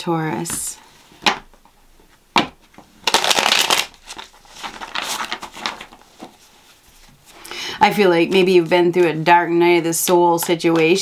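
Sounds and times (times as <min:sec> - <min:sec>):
cards being shuffled: 0:02.4 - 0:07.2.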